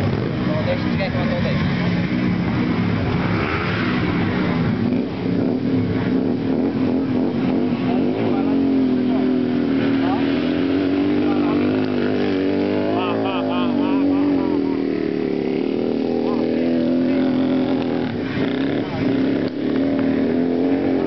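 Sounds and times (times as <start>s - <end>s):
motorcycle engine running: 0.0s - 21.0s
people talking: 0.4s - 1.7s, 7.7s - 20.1s.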